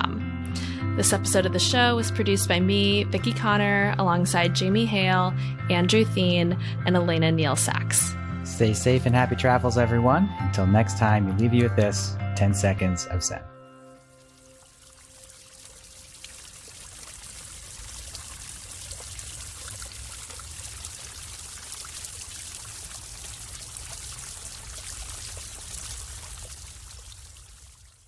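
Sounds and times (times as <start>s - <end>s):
running water: 13.9s - 28.0s.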